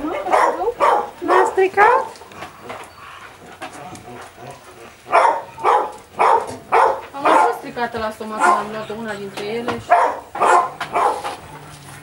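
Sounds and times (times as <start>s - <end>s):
dog barking: 0.1s - 2.2s, 5.1s - 7.7s, 8.3s - 8.8s, 9.8s - 11.4s.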